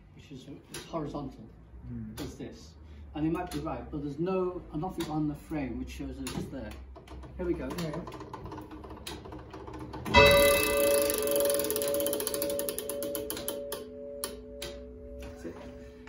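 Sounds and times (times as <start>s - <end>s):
clock movement clicks: 6.2s - 15.3s
clock bell ringing: 10.1s - 16.0s.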